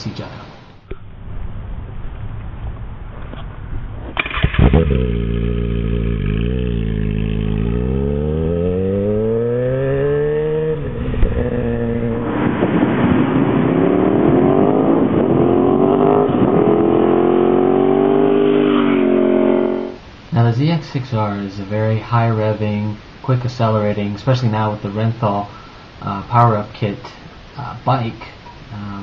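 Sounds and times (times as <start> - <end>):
motorcycle engine revving: 4.1 - 20.1
rushing noise: 5.7 - 21.6.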